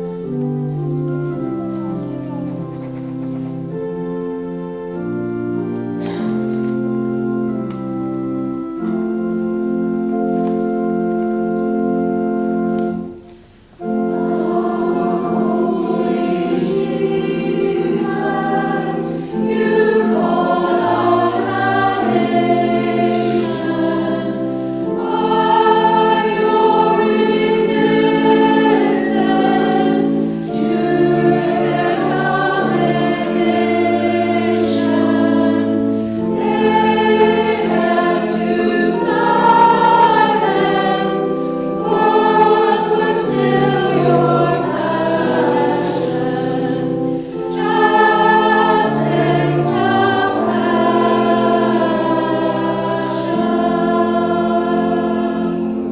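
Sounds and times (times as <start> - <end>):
church choir singing: 0.0 - 55.9.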